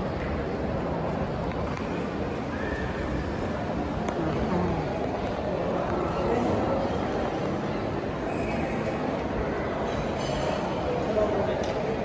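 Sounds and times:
shopping mall hubbub: 0.0s - 12.0s.

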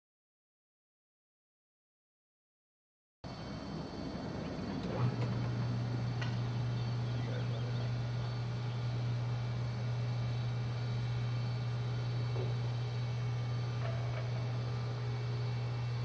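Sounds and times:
hydraulic power unit humming: 3.3s - 16.0s.

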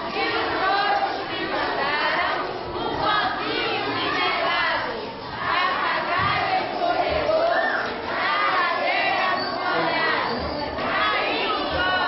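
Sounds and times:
children shouting and cheering: 0.0s - 12.0s.

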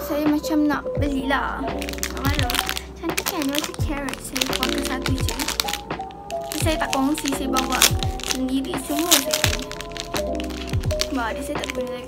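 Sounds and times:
music with a beat: 0.0s - 12.0s.

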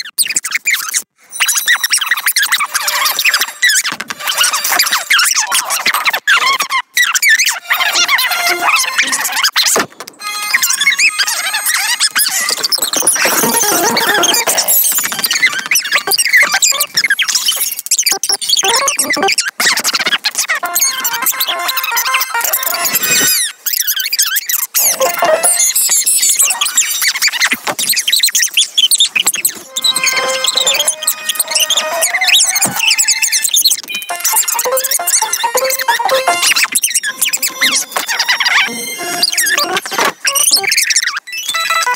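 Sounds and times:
sped-up squeaky cartoon chatter: 0.0s - 41.9s
music with held notes: 10.2s - 10.9s, 20.6s - 23.2s, 24.8s - 25.7s, 34.1s - 36.6s.

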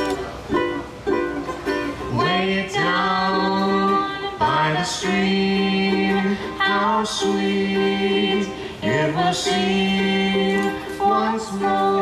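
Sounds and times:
ukulele strumming chords: 0.0s - 12.0s
person singing long notes: 2.0s - 12.0s.

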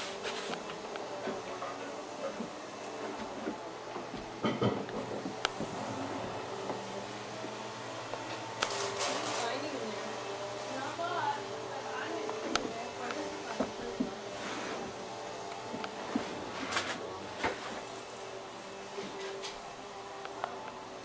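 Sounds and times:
faint voices talking: 9.0s - 21.0s.

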